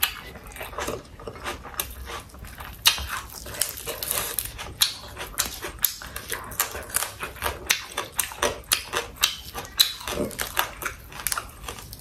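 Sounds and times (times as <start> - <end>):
crunchy chewing: 0.0 - 12.0.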